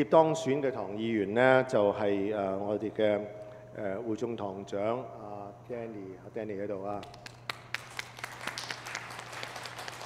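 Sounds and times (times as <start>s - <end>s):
congregation applauding: 7.1s - 10.0s.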